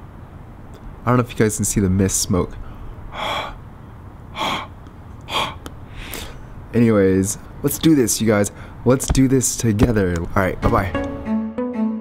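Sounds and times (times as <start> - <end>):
person breathing out hard: 2.6 - 3.6, 4.3 - 6.5.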